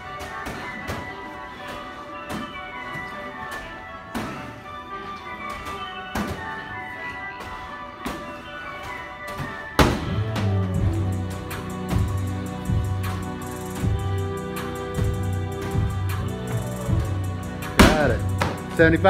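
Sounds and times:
music playing: 0.0 - 19.0
medicine ball thudding on wall: 17.8 - 18.6.

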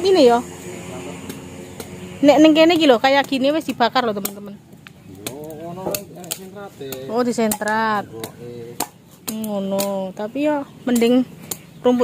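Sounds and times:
sharp clicks: 1.2 - 6.5, 7.2 - 12.0.

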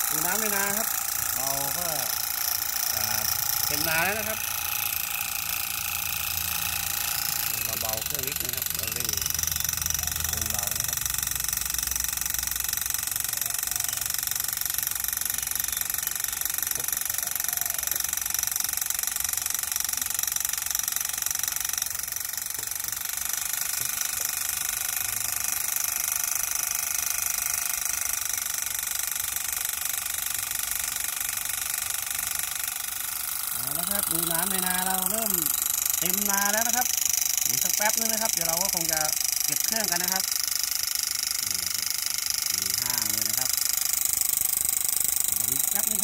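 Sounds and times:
small motor high-pitched whine: 0.0 - 46.0.

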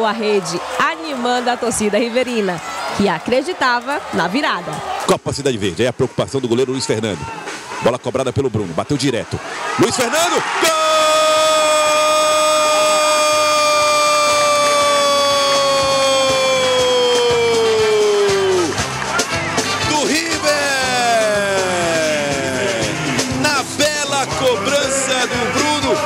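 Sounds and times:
commentator's drawn-out goal cry: 9.7 - 18.7, 19.7 - 26.0
man shouting excitedly: 9.7 - 18.7, 19.8 - 26.0.

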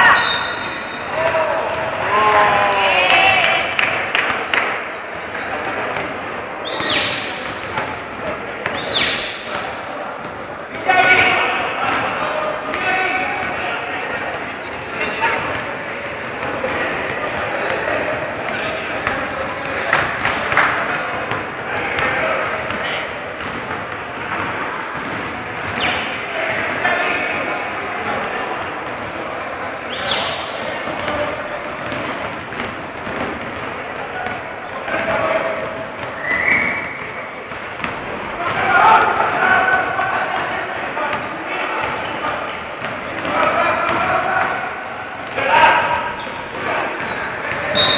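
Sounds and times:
sneakers squeaking: 0.0 - 2.1, 5.1 - 47.9
players calling out: 0.0 - 47.9
basketball bouncing on court: 3.2 - 29.3, 30.0 - 47.9.

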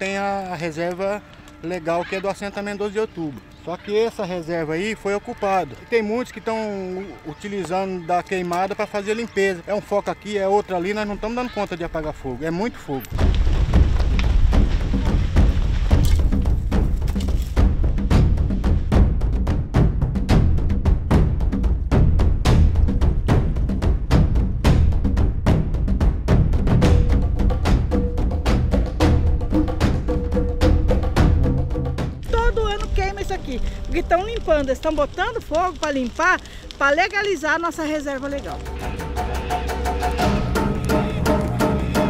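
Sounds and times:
heavy low drum bed: 13.2 - 33.3.

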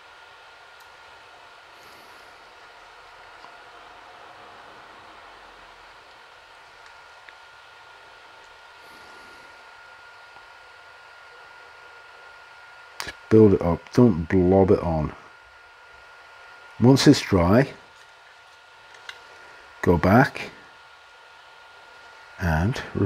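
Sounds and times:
faint high whine: 0.0 - 23.0.

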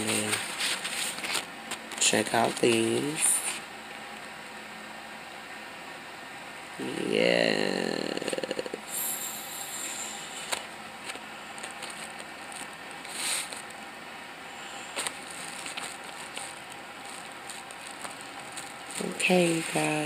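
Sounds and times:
handling rustling: 0.0 - 2.9, 10.4 - 13.8, 14.9 - 20.0.

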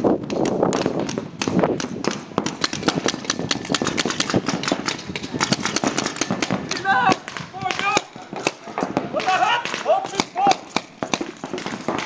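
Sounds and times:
paintball markers firing: 0.0 - 12.0.

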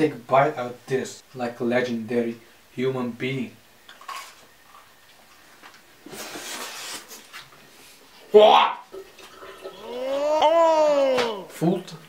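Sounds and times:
rustling scraping noise: 4.0 - 4.5, 5.4 - 8.0.

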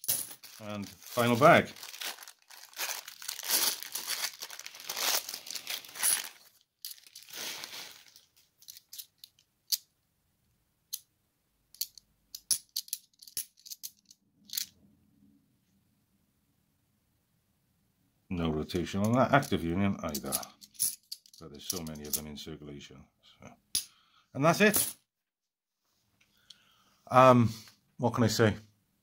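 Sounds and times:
coins clinking: 0.0 - 9.8, 11.8 - 14.7, 19.0 - 22.3, 24.7 - 25.0
plastic bag crinkling and tearing: 0.3 - 8.5.

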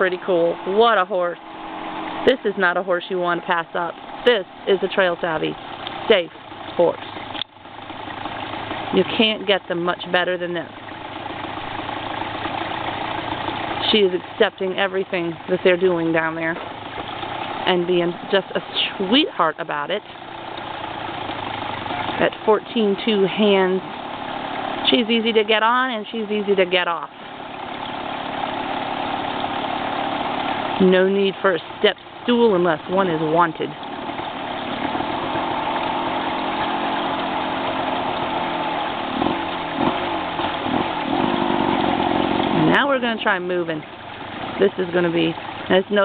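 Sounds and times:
dirt bike engine running: 0.0 - 46.0.

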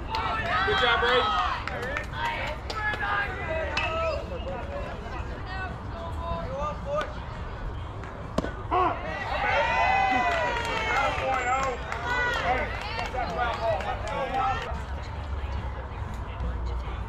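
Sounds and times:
young players shouting: 0.2 - 1.6
baseball popping into mitt: 8.0 - 8.6.

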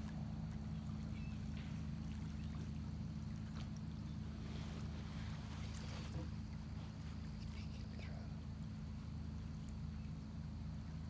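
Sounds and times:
low steady hum: 0.0 - 11.0
water lapping at shore: 0.0 - 11.0.

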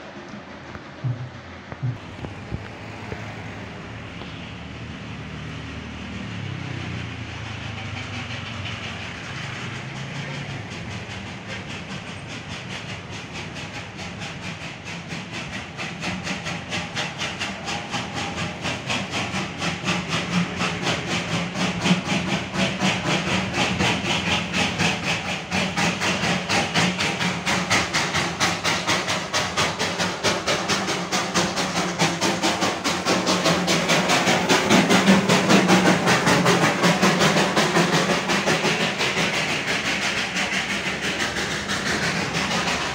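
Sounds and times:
steam hiss: 0.0 - 42.9
steam locomotive chuffing: 0.0 - 42.9.

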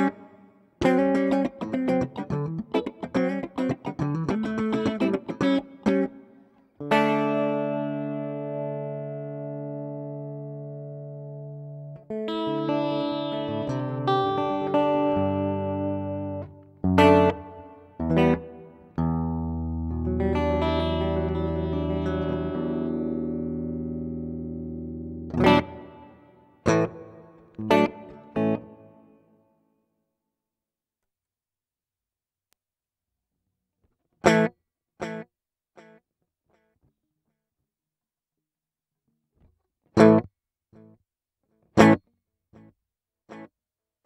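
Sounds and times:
electric guitar notes and chords: 0.0 - 29.1, 40.0 - 40.3, 41.8 - 42.0.

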